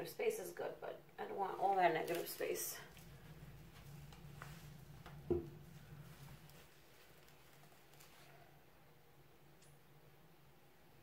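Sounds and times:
faint handling sounds: 0:01.6 - 0:08.6.

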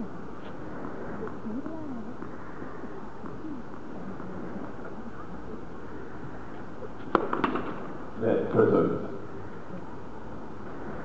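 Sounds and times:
tennis ball impacts: 0:07.0 - 0:08.0.

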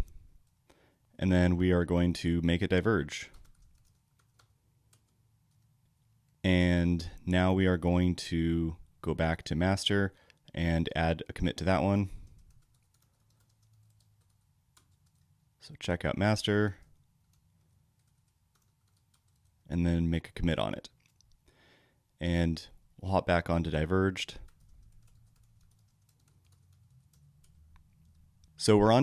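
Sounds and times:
computer keyboard keystrokes: 0:03.3 - 0:05.7, 0:12.2 - 0:15.3, 0:17.2 - 0:19.6, 0:24.4 - 0:28.3.

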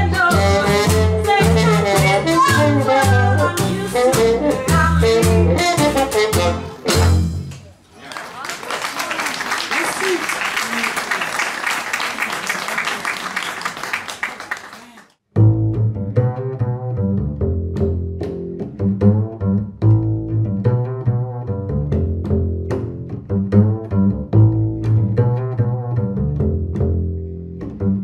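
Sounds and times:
jazz song: 0:00.0 - 0:07.7, 0:15.3 - 0:28.0
audience clapping: 0:07.5 - 0:15.2.

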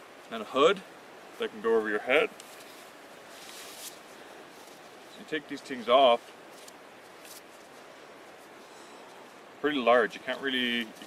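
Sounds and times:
outdoor background hiss: 0:00.0 - 0:11.0
soft fabric rustle: 0:01.3 - 0:11.0.

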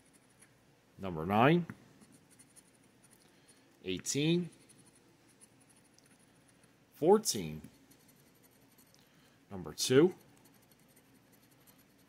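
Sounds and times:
scratching lottery ticket: 0:00.0 - 0:00.5, 0:02.0 - 0:06.7, 0:07.3 - 0:09.0, 0:09.8 - 0:12.0.

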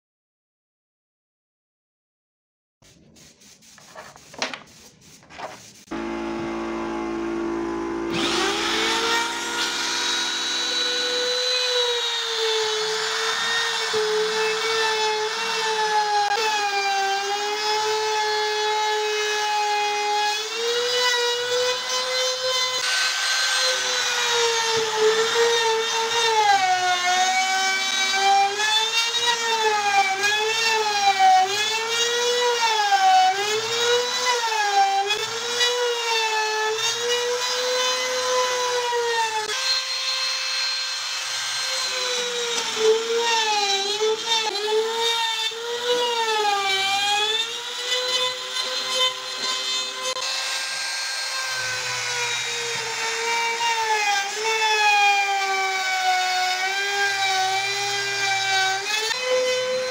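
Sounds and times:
router cutting into plywood: 0:05.9 - 0:59.9.

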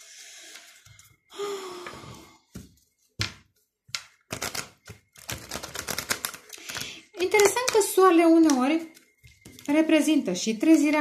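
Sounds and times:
cards being shuffled: 0:03.9 - 0:07.8.

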